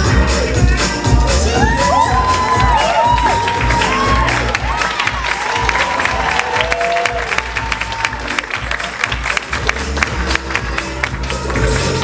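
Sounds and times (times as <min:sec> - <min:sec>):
loud show music with heavy bass: 0:00.0 - 0:12.0
crowd whooping and cheering: 0:01.2 - 0:09.2
audience clapping: 0:01.6 - 0:12.0.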